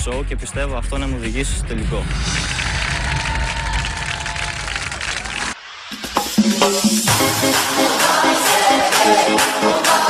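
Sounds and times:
crowd cheering: 2.2 - 5.6
audience applauding: 2.4 - 5.6.

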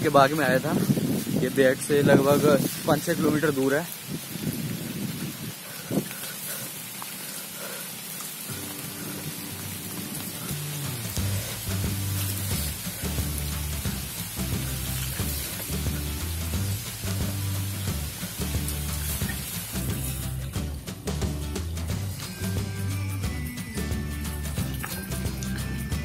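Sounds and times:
bicycle rolling on wet dirt: 0.0 - 20.8
rain hissing: 0.0 - 26.0
background music with bass: 8.5 - 26.0.

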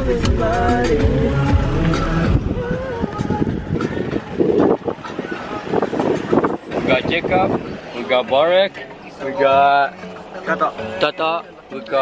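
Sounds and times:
car interior road rumble: 0.0 - 8.2
music: 0.0 - 12.0
people talking: 6.8 - 12.0.

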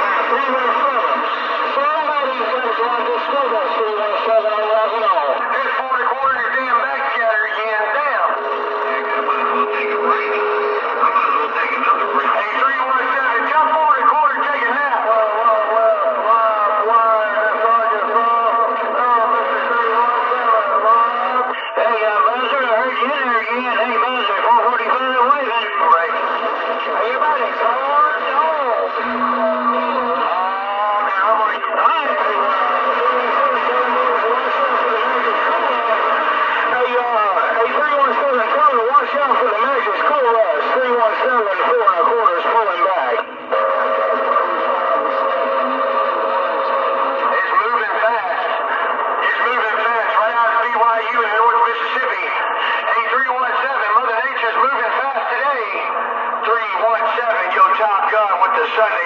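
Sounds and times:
radio whistles and squeals: 0.0 - 15.0, 22.5 - 38.3
garbled overlapping radio voices: 0.0 - 59.0
steady whistle tone: 8.2 - 12.4, 28.9 - 31.0.

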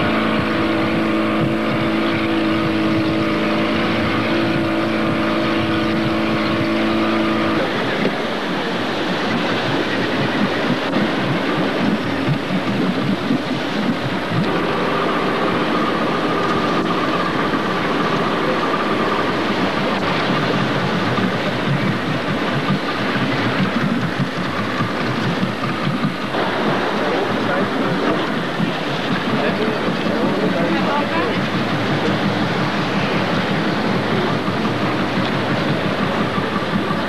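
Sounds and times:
motorboat engine droning: 0.0 - 37.0
wind and water rushing: 0.0 - 37.0
steady tone: 24.9 - 37.0.

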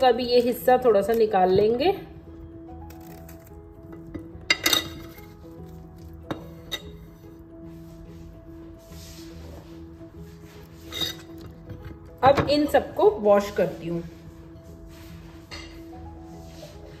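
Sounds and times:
soft background music: 0.0 - 17.0
knife clinking on ceramic plate: 4.5 - 5.2, 10.9 - 11.5.

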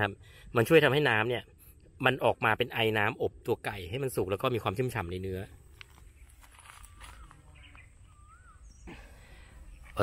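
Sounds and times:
faint whistled bird call: 6.2 - 10.0.

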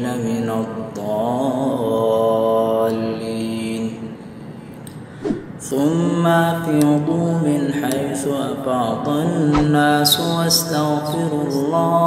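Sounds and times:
man chanting melodic recitation: 5.6 - 12.0.

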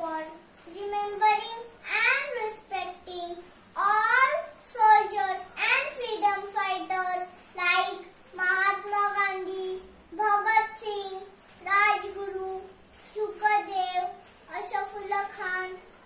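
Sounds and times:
girl singing unaccompanied: 0.0 - 16.0.

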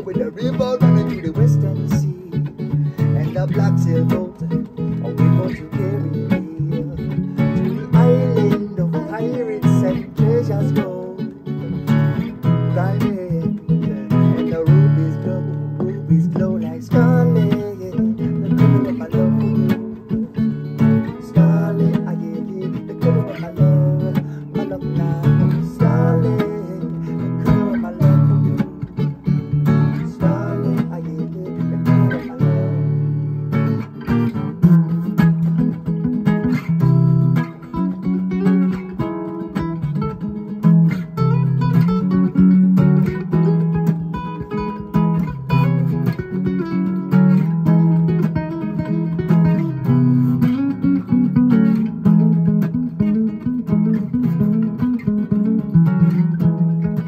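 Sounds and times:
acoustic guitars playing: 0.0 - 57.0.

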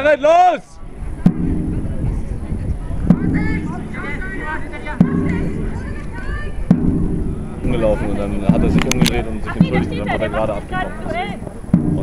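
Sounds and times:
drum knocks with low ring: 1.2 - 4.1, 5.0 - 5.8, 6.6 - 8.8, 11.7 - 12.0.

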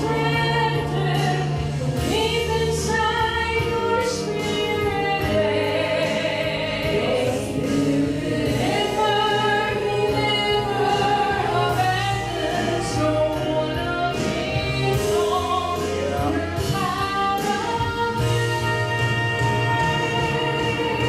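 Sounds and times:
women singing gospel song: 0.0 - 21.0.

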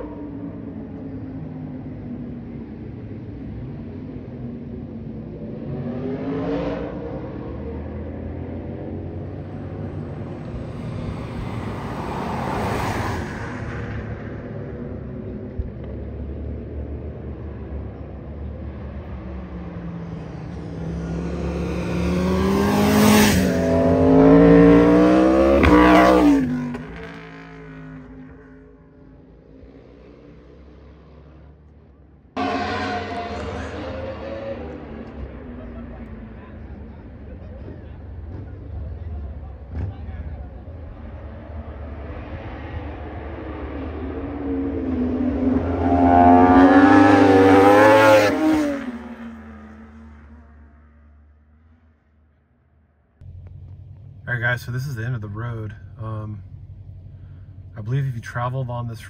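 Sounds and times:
vehicle engines accelerating: 0.0 - 52.1, 53.2 - 59.0.

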